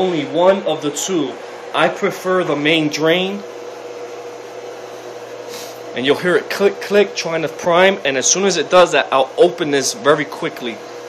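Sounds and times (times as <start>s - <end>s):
pool pump motor humming: 0.0s - 11.0s.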